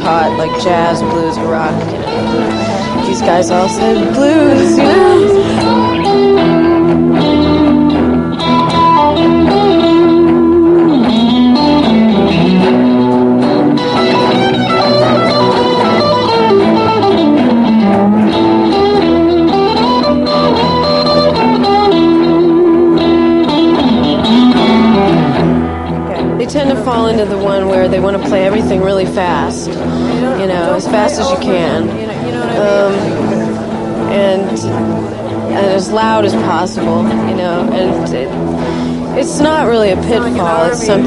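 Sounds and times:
electric guitar blues lead: 0.0s - 41.0s.

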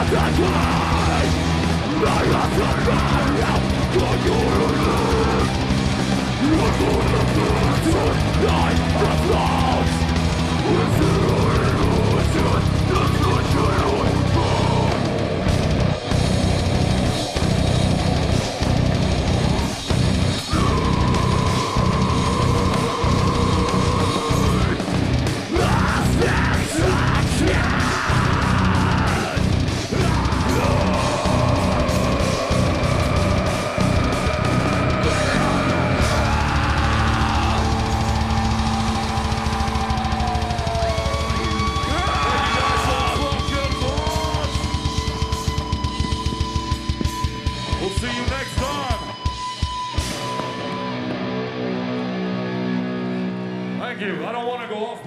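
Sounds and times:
screamed vocal: 0.0s - 5.6s, 20.4s - 44.6s
rapid drumming: 0.0s - 50.5s
metal band playing: 0.0s - 55.0s.

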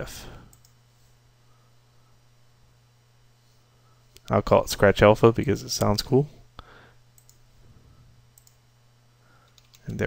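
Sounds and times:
low steady hum: 0.0s - 10.0s
computer mouse clicks: 7.2s - 7.4s, 8.4s - 8.6s, 9.5s - 10.0s
person speaking: 9.8s - 10.0s.

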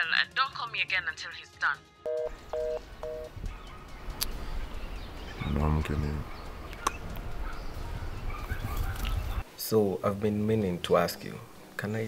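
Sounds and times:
two-tone phone beeps: 2.1s - 3.3s.

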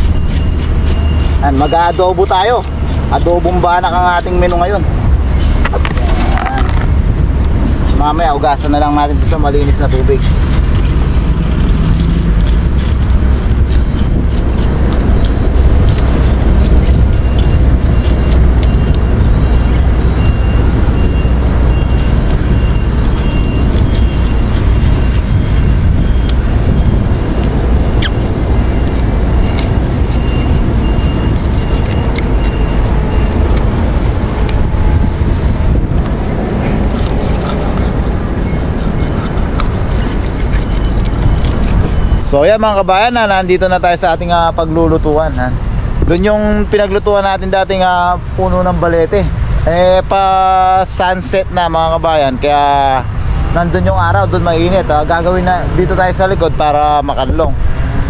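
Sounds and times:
steady low rumble: 0.0s - 58.0s
knife scraping fish scales: 21.7s - 25.4s, 28.9s - 33.7s, 36.9s - 42.2s.

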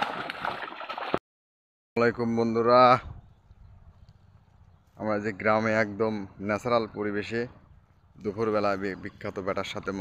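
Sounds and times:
bare feet wading in muddy water: 0.0s - 1.2s.

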